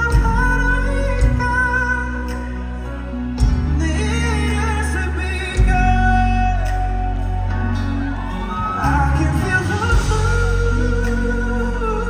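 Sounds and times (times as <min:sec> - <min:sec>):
deep steady bass: 0:00.0 - 0:12.0
keyboard chords: 0:00.0 - 0:12.0.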